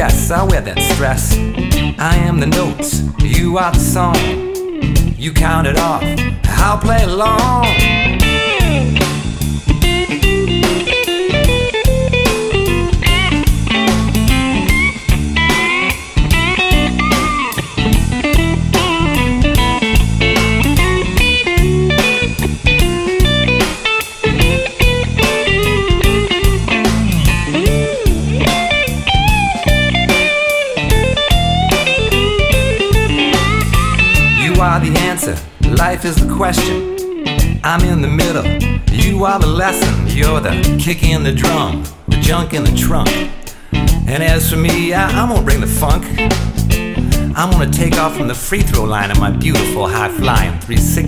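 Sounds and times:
blues-rock electric guitar lead: 0:00.0 - 0:51.0
drums: 0:00.0 - 0:51.0
electric bass: 0:00.0 - 0:51.0.

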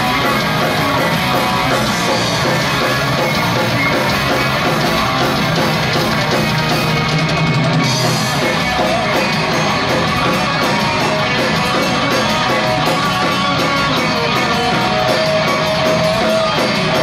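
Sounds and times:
drum kit: 0:00.0 - 0:17.0
electric guitar: 0:00.0 - 0:17.0.

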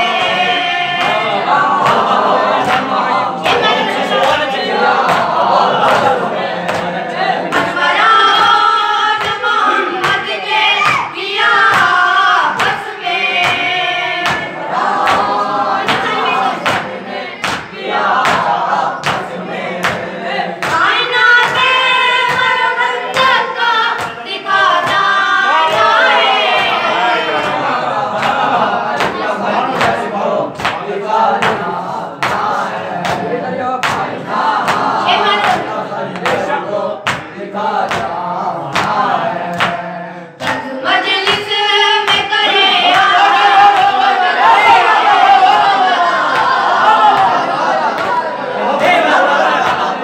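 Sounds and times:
group chanting a lament: 0:00.0 - 0:50.0
chest-beating slaps: 0:01.0 - 0:03.6, 0:10.0 - 0:11.1, 0:13.4 - 0:23.3, 0:30.6 - 0:39.8
hands beating on chests: 0:36.2 - 0:37.3.

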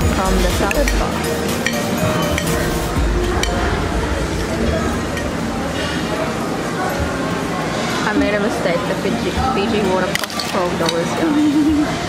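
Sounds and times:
cutlery and crockery clinking: 0:00.0 - 0:03.8, 0:09.6 - 0:11.4
murmur of diners' voices: 0:00.0 - 0:12.0.

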